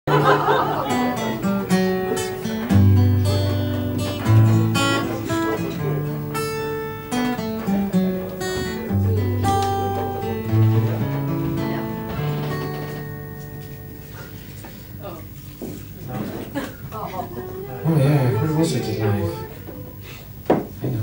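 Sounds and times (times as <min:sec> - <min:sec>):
acoustic guitar playing: 0:00.1 - 0:16.0, 0:17.4 - 0:20.1.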